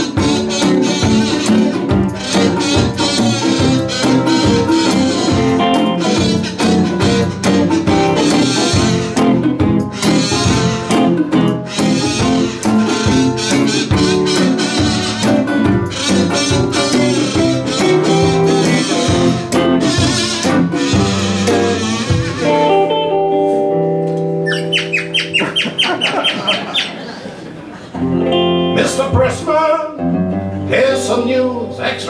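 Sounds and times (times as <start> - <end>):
acoustic and resonator guitars playing: 0.0 - 32.0.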